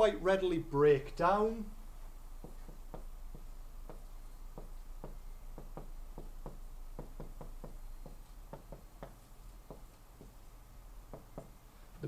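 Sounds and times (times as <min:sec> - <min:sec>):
marker tapping on whiteboard: 0:02.4 - 0:10.4, 0:11.1 - 0:11.6.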